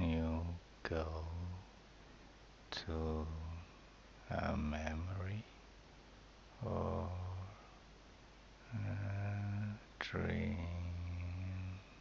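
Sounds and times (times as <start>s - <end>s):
man speaking in monotone: 0.0s - 1.6s, 2.7s - 5.6s, 6.6s - 7.6s, 8.7s - 11.8s.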